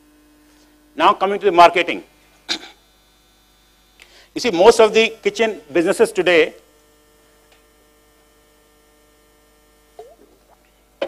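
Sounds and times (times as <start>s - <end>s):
faint electrical mains hum: 0.0s - 11.0s.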